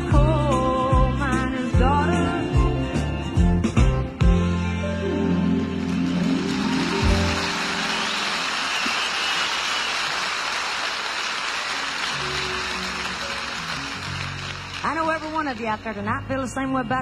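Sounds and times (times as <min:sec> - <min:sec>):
live band playing: 0:00.0 - 0:09.4, 0:11.7 - 0:16.9
audience applause: 0:05.5 - 0:15.9.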